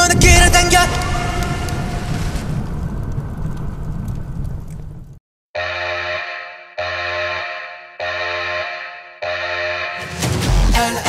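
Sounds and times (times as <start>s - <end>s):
low boom rumble: 0.0s - 5.2s.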